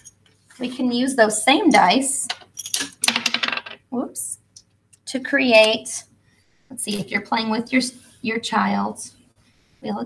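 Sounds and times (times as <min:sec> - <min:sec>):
dice rattling on a table: 0:02.6 - 0:03.8.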